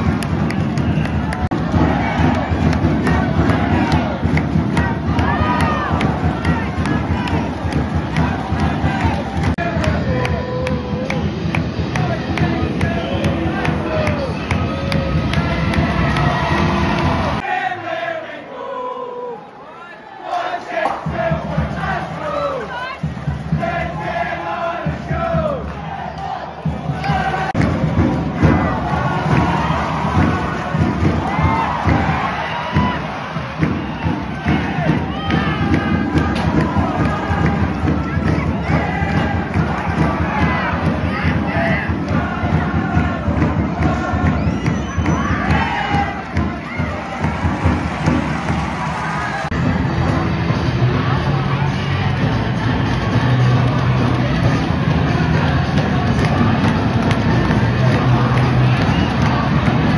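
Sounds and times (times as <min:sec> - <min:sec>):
arena crowd shouting and chanting: 0:00.0 - 0:59.9.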